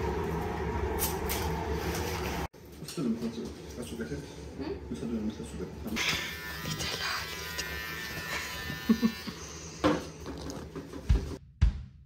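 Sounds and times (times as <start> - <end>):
electric clippers buzzing: 6.0 - 10.2.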